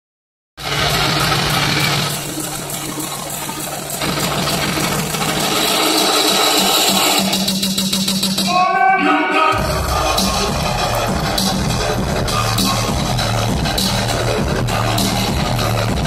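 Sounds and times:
loud hype music over a pa: 0.6s - 16.0s
steady low drone: 9.6s - 16.0s.

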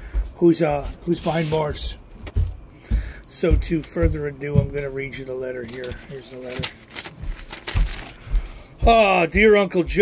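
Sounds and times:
low thumps of handling: 0.1s - 10.0s
man's voice: 0.4s - 2.0s, 3.3s - 6.8s, 8.8s - 10.0s
paper rustling: 1.0s - 1.8s, 5.5s - 8.5s.

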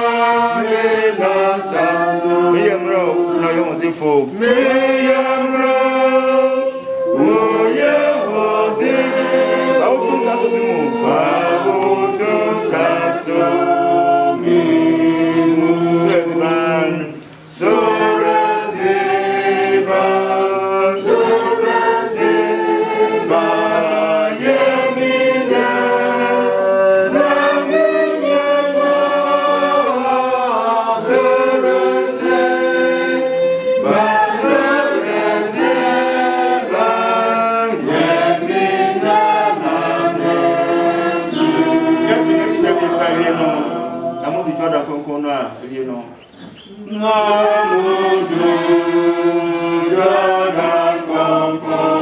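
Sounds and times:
group singing a hymn: 0.0s - 52.0s.

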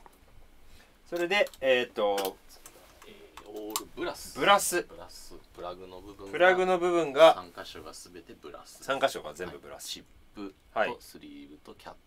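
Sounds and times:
faint clicks: 1.1s - 3.9s
man speaking: 1.1s - 12.0s.

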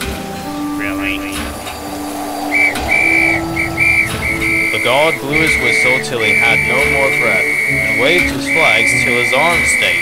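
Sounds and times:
low hum: 0.4s - 6.2s
whistle shrill blasts: 0.9s - 10.0s.

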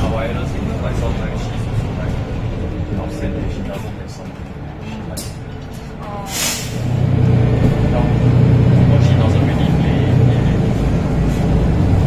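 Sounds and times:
bus diesel engine running: 0.0s - 12.0s
passengers' voices: 0.0s - 12.0s.

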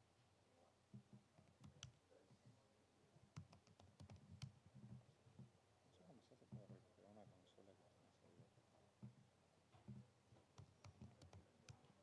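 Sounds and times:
faint laptop typing: 0.9s - 5.6s, 6.3s - 8.4s, 9.0s - 12.0s.

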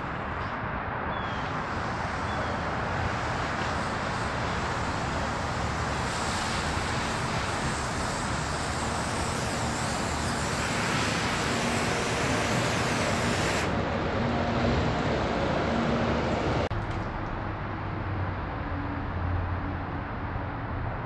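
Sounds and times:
garden hose spraying water: 1.4s - 13.8s.

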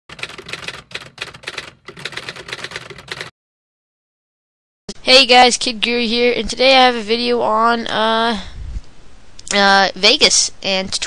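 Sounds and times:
typewriter keystrokes: 0.1s - 3.3s.

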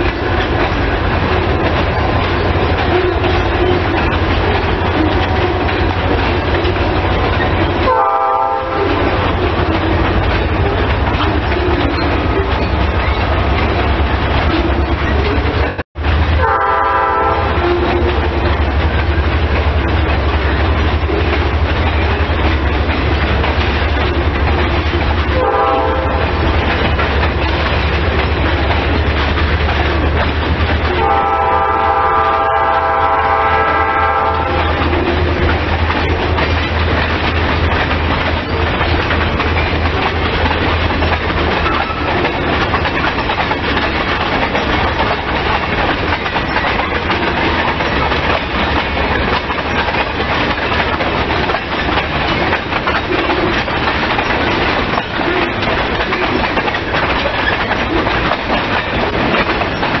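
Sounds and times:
train wheels on rails: 0.0s - 60.0s
locomotive horn: 7.7s - 10.9s, 16.4s - 18.6s, 25.3s - 26.6s, 30.9s - 35.4s.

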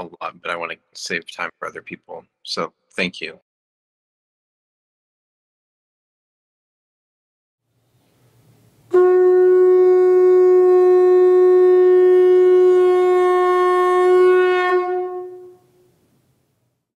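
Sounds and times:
long steady horn note: 8.9s - 16.0s.

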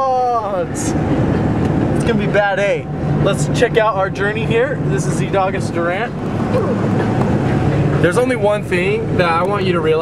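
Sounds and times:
truck road and engine noise: 0.0s - 10.0s.

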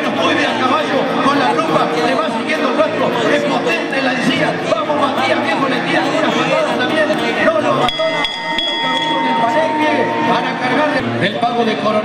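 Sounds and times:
crowd noise: 0.0s - 12.0s
men talking: 0.0s - 12.0s
steady ringing tone: 7.9s - 11.0s.

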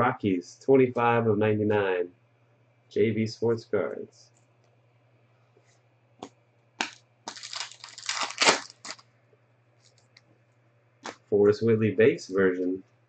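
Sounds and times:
plastic sleeves crinkling: 6.8s - 9.1s, 9.8s - 10.2s.

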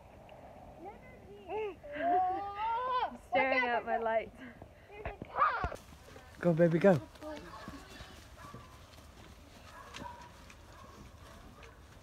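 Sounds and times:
footsteps of group walking: 5.2s - 12.0s.

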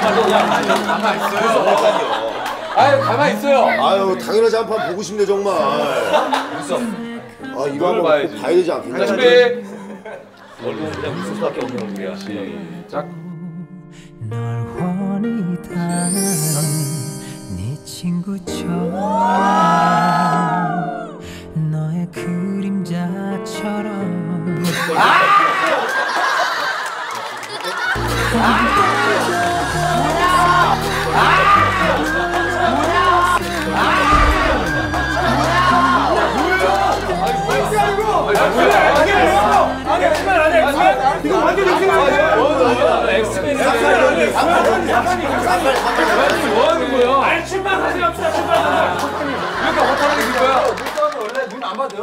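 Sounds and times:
soft background music: 0.0s - 26.1s, 28.0s - 51.0s
group of voices going ooh: 18.9s - 21.2s, 24.8s - 39.7s
overlapping chatter of people: 26.7s - 52.0s.

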